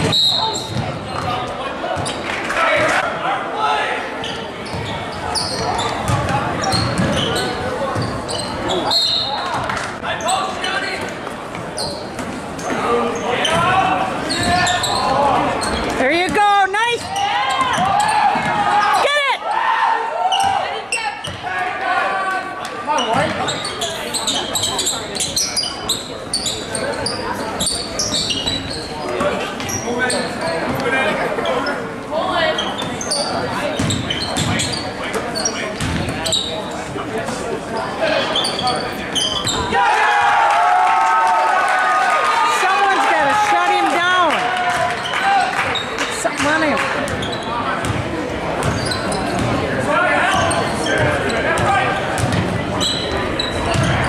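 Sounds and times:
sneakers squeaking: 0.0 - 2.9, 4.2 - 19.2, 20.2 - 21.6, 22.2 - 39.8, 42.9 - 54.0
crowd chatter echoing: 0.0 - 54.0
basketball bouncing on court: 0.6 - 1.4, 5.6 - 8.2, 33.7 - 34.6, 35.8 - 36.3, 46.4 - 49.6, 50.9 - 52.6, 53.6 - 54.0.

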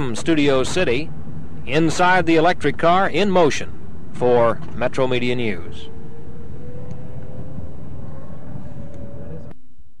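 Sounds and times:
road rumble in car cabin: 0.0 - 9.6
electric motor whine rising: 5.7 - 9.6.

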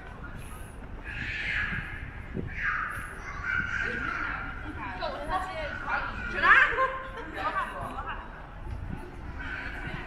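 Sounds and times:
people talking and laughing: 0.0 - 10.0.

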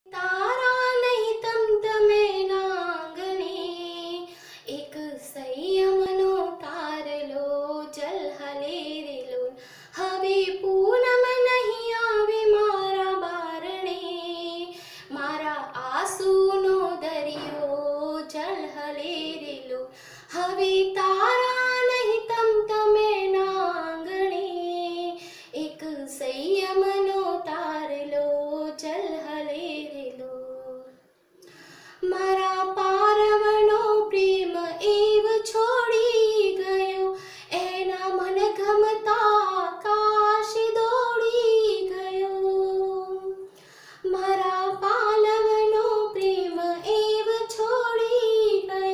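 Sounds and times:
woman singing unaccompanied: 0.1 - 31.0, 32.0 - 48.9.

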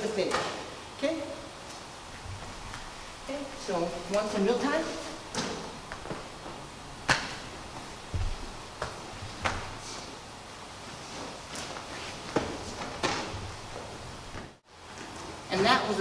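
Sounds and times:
scuffs and cloth rustling: 1.6 - 15.8
body thudding onto a mat: 5.4 - 9.9
slaps on a padded mat: 7.1 - 7.5, 8.1 - 9.9.

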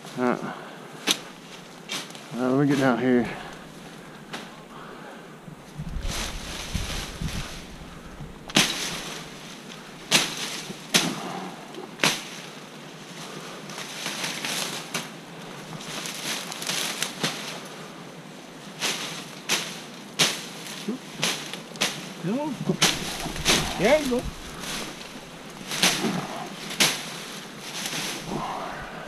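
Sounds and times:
leaves rustling: 0.0 - 29.0
machete chopping vines: 8.5 - 9.5, 10.1 - 11.4, 12.0 - 12.5, 18.8 - 20.6, 21.2 - 22.1, 22.7 - 28.4.

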